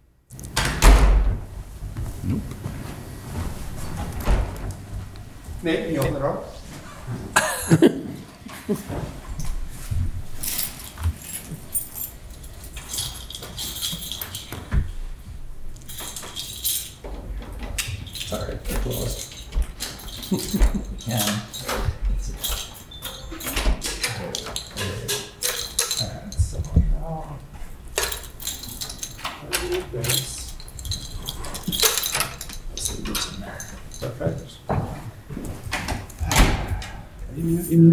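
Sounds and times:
rustling: 1.5s - 7.4s, 8.4s - 37.8s.

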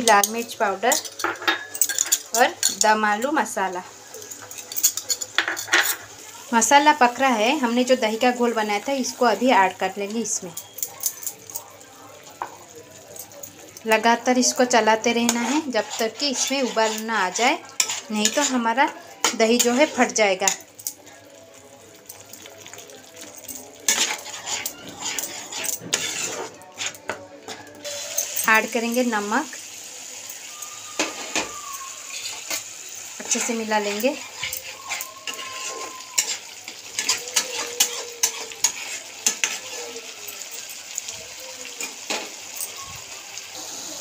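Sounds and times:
metal spoon clinking bowls: 0.0s - 6.1s, 6.7s - 29.3s, 31.0s - 40.8s, 41.4s - 42.9s
metal spatula scraping a pan: 0.0s - 11.3s, 14.4s - 20.7s, 23.7s - 29.3s, 31.0s - 40.4s.

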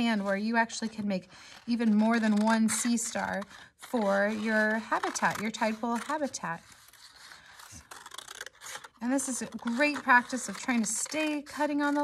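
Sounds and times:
scissors snipping paper: 0.0s - 12.0s.

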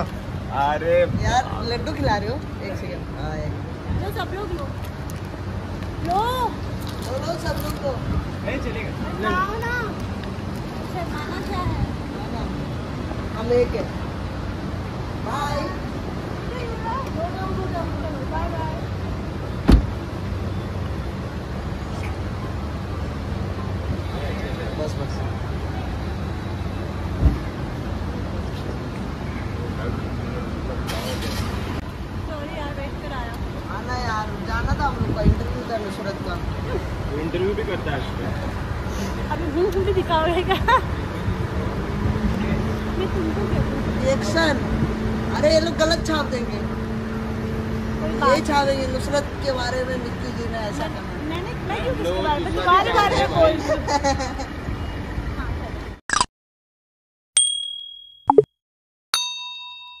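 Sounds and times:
low street rumble: 0.0s - 56.0s
notification bell ding: 57.4s - 58.5s, 59.2s - 60.0s
two-note pop falling in pitch: 57.4s - 58.5s.

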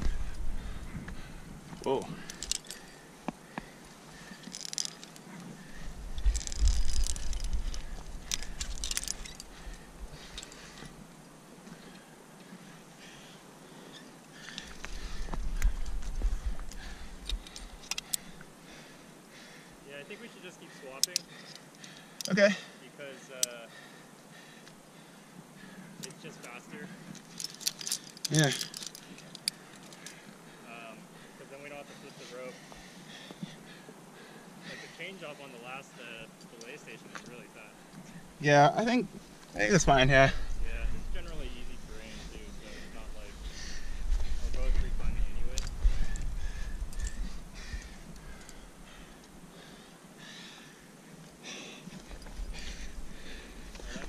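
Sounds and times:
climbing hardware jingling: 0.0s - 11.0s, 13.8s - 18.4s, 20.7s - 22.7s, 26.0s - 30.4s, 39.9s - 49.8s, 51.8s - 54.0s.

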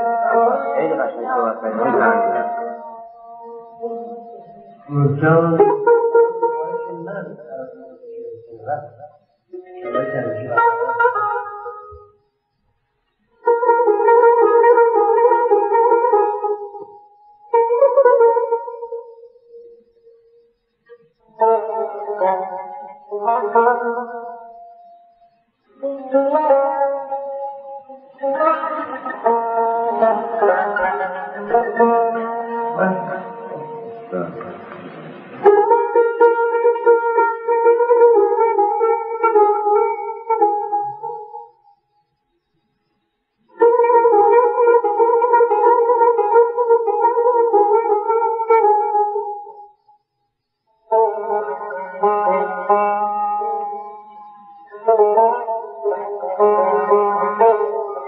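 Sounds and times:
violin long held notes: 27.8s - 41.0s.

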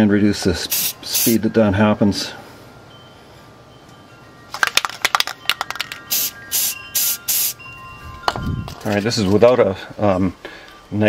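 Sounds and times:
aerosol spray hissing: 0.7s - 1.4s, 6.1s - 7.6s.

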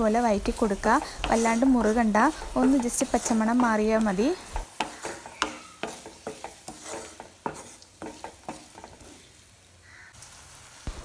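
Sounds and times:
spoon knocking and scraping pan: 0.0s - 9.3s
onions sizzling in oil: 0.0s - 11.0s.

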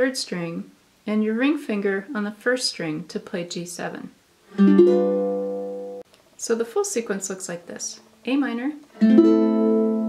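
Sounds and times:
ukulele chord strummed: 4.5s - 6.0s, 9.0s - 10.0s.

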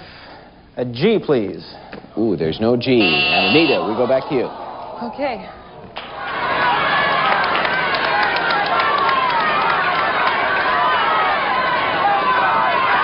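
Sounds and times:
studio audience cheering: 3.1s - 5.2s, 6.0s - 13.0s.

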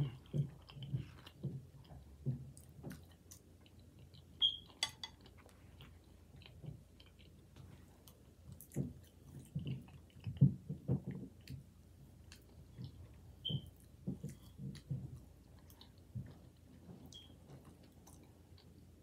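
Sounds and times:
person chewing food: 0.0s - 19.0s.

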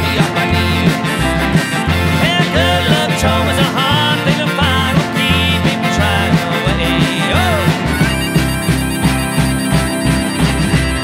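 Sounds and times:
harmonica: 0.0s - 11.0s
live band playing: 0.0s - 11.0s.

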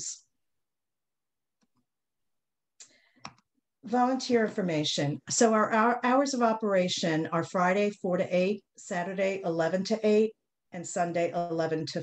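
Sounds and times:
woman speaking: 3.8s - 12.0s.

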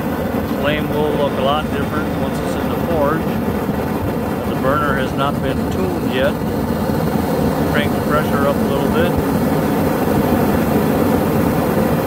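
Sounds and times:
gas burner flame rushing: 0.0s - 12.0s.

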